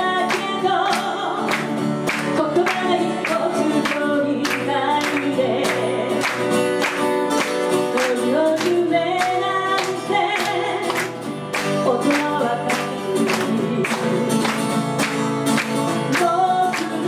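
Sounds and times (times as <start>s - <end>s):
woman singing into a microphone: 0.0s - 6.7s, 7.8s - 15.0s, 15.8s - 17.0s
acoustic guitar strumming: 0.0s - 17.0s.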